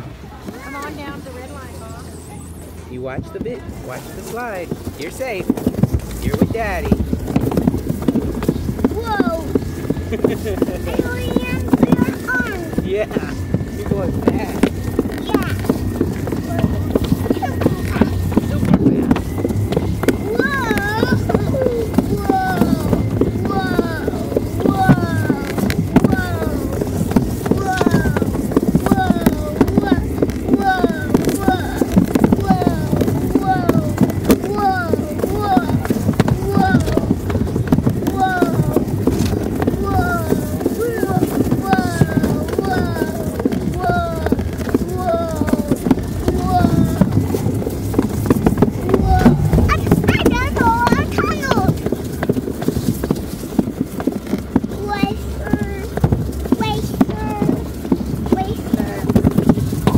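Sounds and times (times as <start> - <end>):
sled clattering rumble on track: 0.0 - 59.9
toddler crying out: 20.3 - 26.8, 27.5 - 30.0, 45.0 - 47.1.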